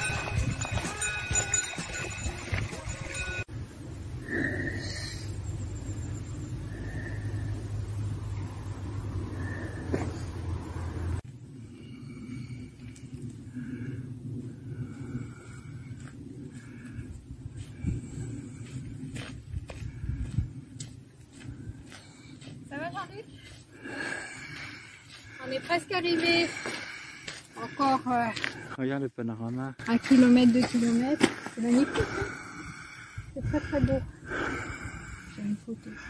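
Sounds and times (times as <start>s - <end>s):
wind rumble on microphone: 0.0s - 3.4s, 8.2s - 23.6s, 32.0s - 35.4s.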